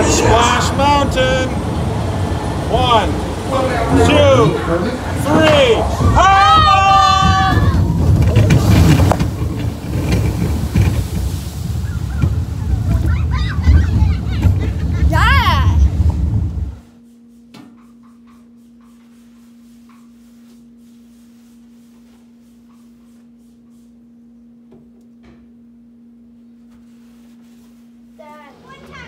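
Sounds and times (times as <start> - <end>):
steady low hum: 0.0 - 29.0
riders shouting and whooping: 3.8 - 8.5, 11.8 - 15.9.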